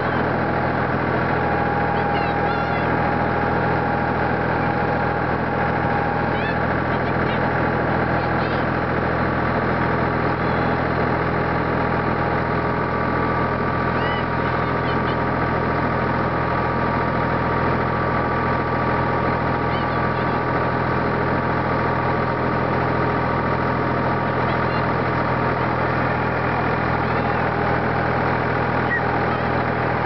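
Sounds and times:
tractor engine running: 0.0 - 30.0.

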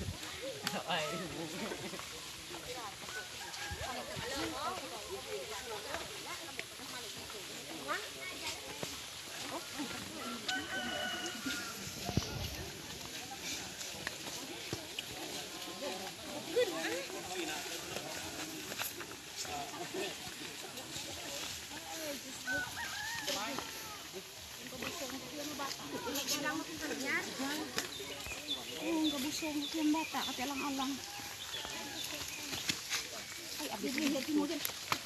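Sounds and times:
murmur of many voices: 0.0 - 35.0
rooster crowing: 10.2 - 12.0, 22.4 - 24.1.

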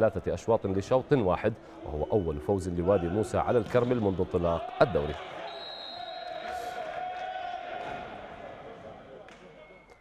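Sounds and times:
players' voices echoing: 0.0 - 10.0.

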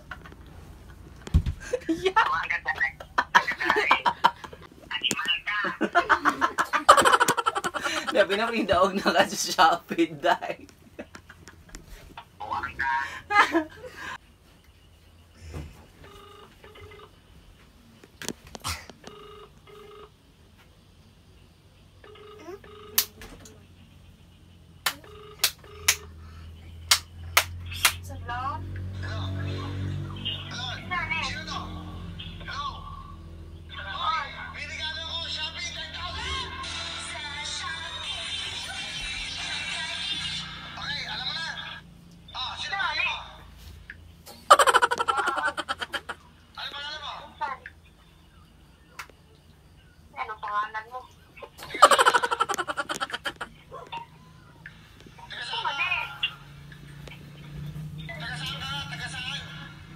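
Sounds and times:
high-pitched laughter: 5.6 - 8.2, 44.3 - 46.2, 51.6 - 53.5.

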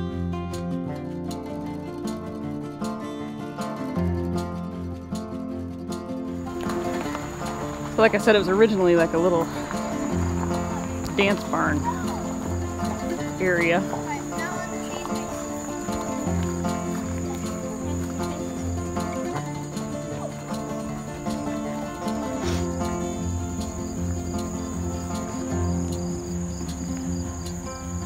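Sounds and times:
background music with bass line: 0.0 - 28.0
cricket trill: 6.4 - 28.0.

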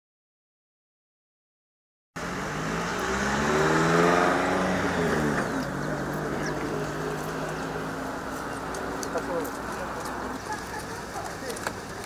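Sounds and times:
outdoor background noise: 2.2 - 12.0
vehicle engine revving: 2.2 - 12.0.

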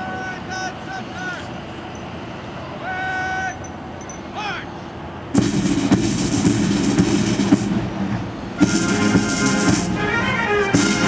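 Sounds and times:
heavy drum strokes: 5.3 - 11.0
rolling snare drum beat: 5.3 - 11.0.

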